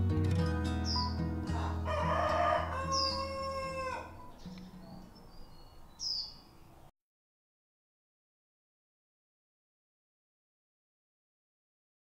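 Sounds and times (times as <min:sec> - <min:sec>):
soft acoustic guitar music: 0:00.0 - 0:05.4
high falling bird chirps: 0:00.8 - 0:01.3, 0:02.8 - 0:06.8
rooster crowing: 0:01.5 - 0:04.3.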